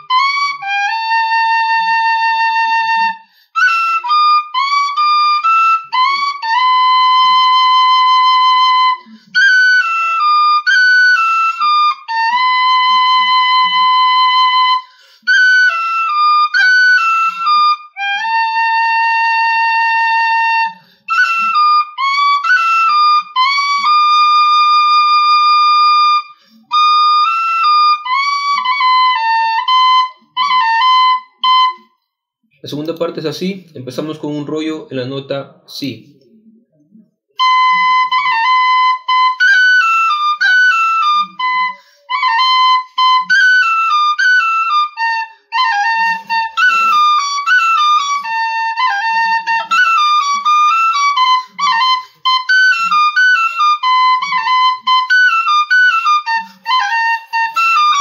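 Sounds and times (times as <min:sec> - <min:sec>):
tin whistle playing lively tune: 0:00.0 - 0:31.9, 0:37.4 - 0:58.0
player breathing: 0:03.2 - 0:03.6, 0:41.8 - 0:42.1.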